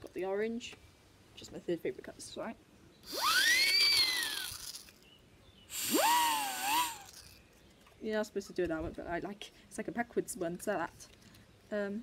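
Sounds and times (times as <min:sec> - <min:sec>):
party whistle toots: 0:05.7 - 0:07.1.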